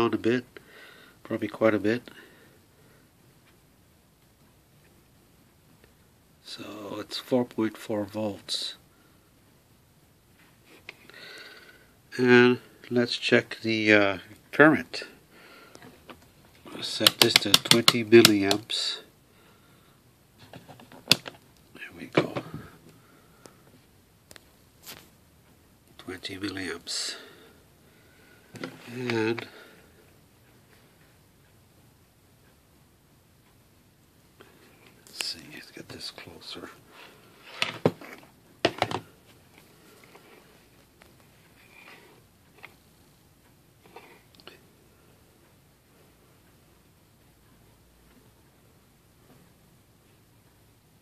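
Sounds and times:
soft rustles: 0:23.8 - 0:25.6.

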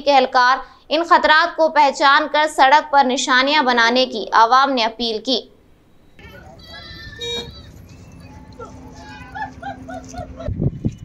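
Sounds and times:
loud low thumps: 0:06.2 - 0:10.8.

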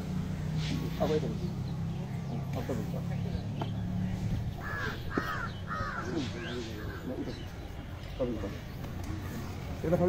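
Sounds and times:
low murmuring voices: 0:00.3 - 0:10.0
crow cawing: 0:04.6 - 0:07.4.

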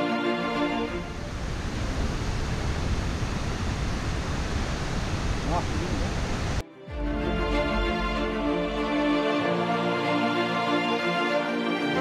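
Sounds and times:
wind buffeting microphone: 0:00.9 - 0:06.6.

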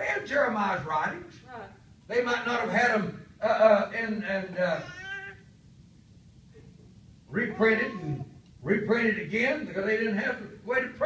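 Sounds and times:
man's wavering hesitation sound: 0:07.3 - 0:08.4.

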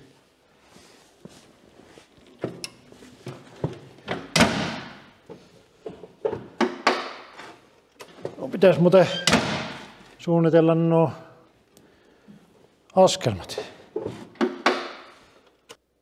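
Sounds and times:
metal knocks and thunks: 0:03.3 - 0:05.1.

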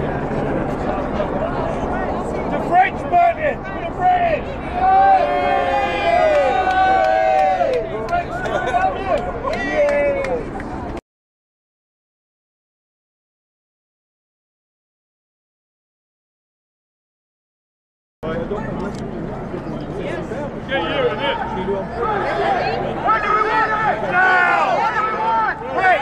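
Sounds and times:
crowd shouting and jeering: 0:02.6 - 0:10.6, 0:20.7 - 0:26.0.

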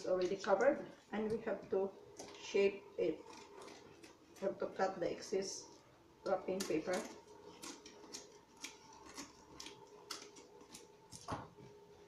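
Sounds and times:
scissors snipping paper: 0:06.4 - 0:11.3.

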